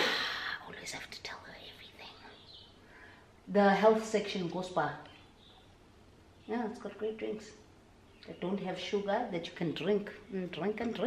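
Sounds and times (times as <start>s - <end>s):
faint whispering: 0.0s - 2.5s
woman speaking: 3.5s - 5.2s, 6.5s - 11.0s.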